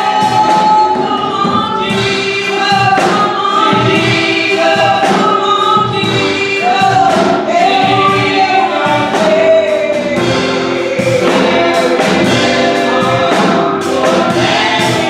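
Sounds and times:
man singing gospel lead: 0:00.0 - 0:15.0
women singing in harmony: 0:00.0 - 0:15.0.

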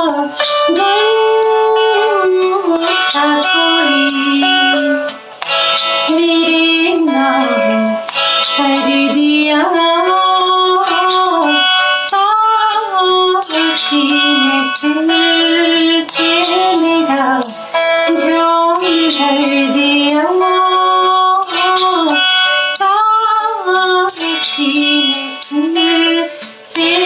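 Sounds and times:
woman singing slow song: 0:00.0 - 0:05.2, 0:06.1 - 0:27.0
plucked guitar: 0:00.0 - 0:27.0.

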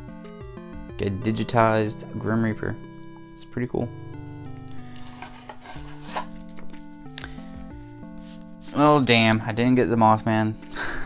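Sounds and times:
eight-bit lo-fi music: 0:00.0 - 0:11.0
trading cards sliding and shuffling: 0:04.5 - 0:09.4.

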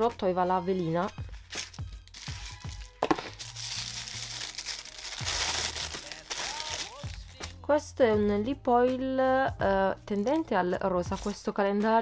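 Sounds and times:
tissue paper crinkling: 0:01.3 - 0:07.6.

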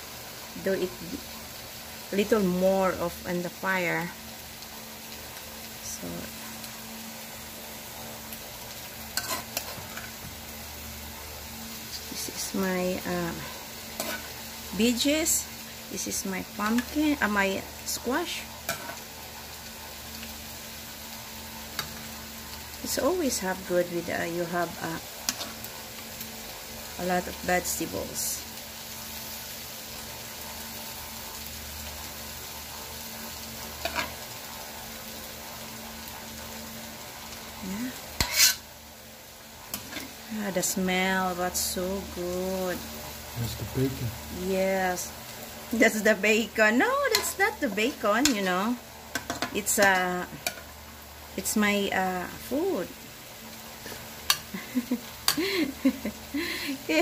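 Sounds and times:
steady hiss: 0:00.0 - 0:57.0.

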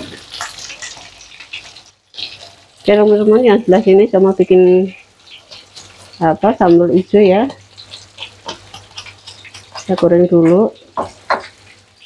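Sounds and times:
fish frying in hot oil: 0:00.0 - 0:12.0.

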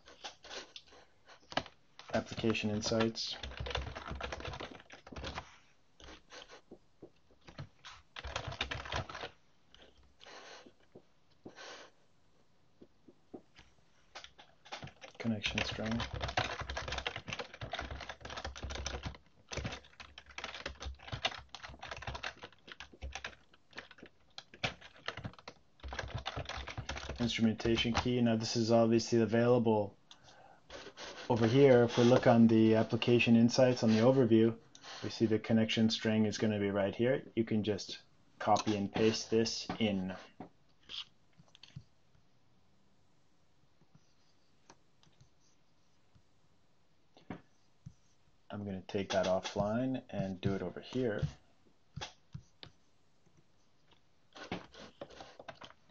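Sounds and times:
typing on computer keyboard: 0:01.5 - 0:05.4, 0:07.4 - 0:09.3, 0:14.1 - 0:28.1, 0:54.4 - 0:55.9.

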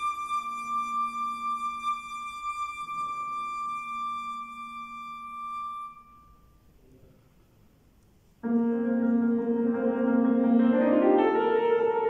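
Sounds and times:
flute holding high note: 0:00.0 - 0:06.6
low sustained piano note: 0:08.4 - 0:12.0.

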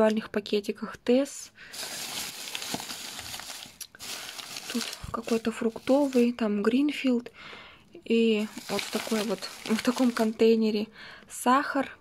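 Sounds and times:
plastic bag crinkling: 0:01.7 - 0:06.4, 0:08.4 - 0:10.5.

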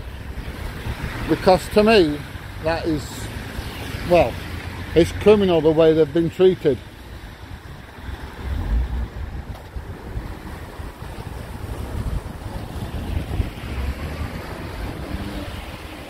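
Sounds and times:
wind buffeting microphone: 0:00.0 - 0:02.6, 0:07.1 - 0:16.0.

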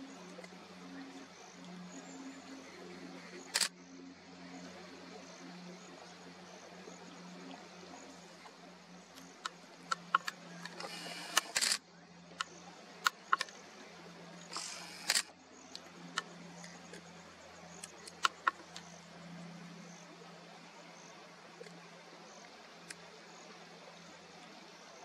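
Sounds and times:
steady low hum: 0:00.0 - 0:25.0
camera shutters clicking: 0:03.5 - 0:03.7, 0:10.2 - 0:11.8, 0:14.5 - 0:15.3.

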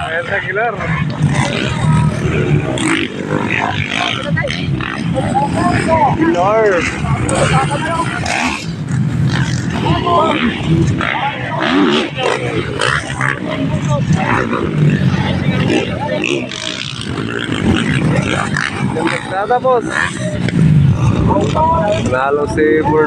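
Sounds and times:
dirt bike engines revving: 0:00.0 - 0:23.0
announcer talking: 0:09.7 - 0:20.5.

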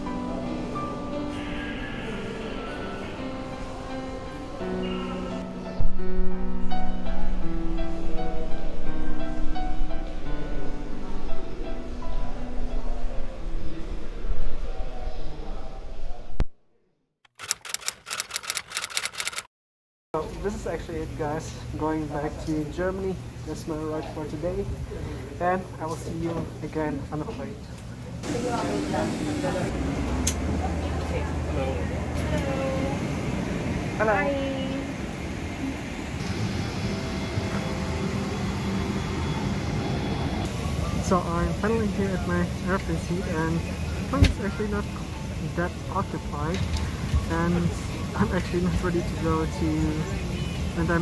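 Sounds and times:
typewriter key clicks: 0:17.3 - 0:19.5.

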